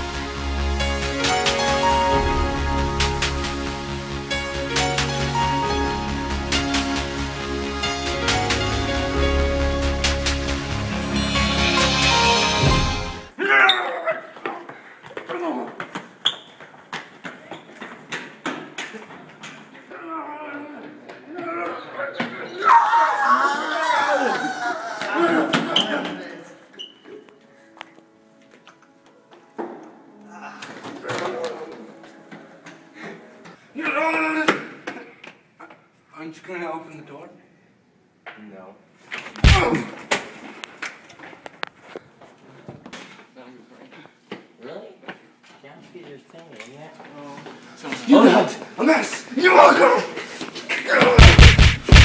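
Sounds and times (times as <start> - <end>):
sharp knock: 39.4 - 39.8, 51.2 - 52.0.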